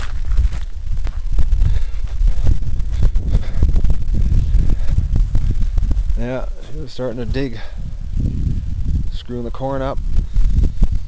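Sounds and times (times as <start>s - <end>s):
knocks and footsteps on wet ground: 0.0s - 7.1s
wind buffeting microphone: 0.0s - 11.0s.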